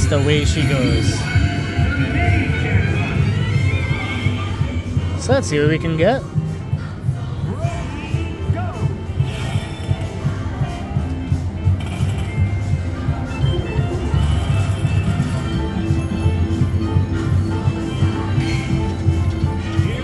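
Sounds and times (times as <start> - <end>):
slot machine music with chimes: 0.0 - 3.2, 11.8 - 20.0.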